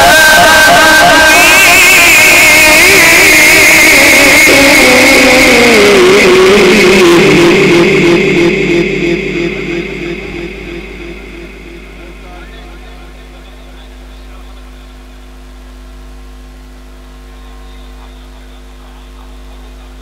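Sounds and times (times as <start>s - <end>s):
person reciting with melismatic vibrato: 0.0s - 13.8s.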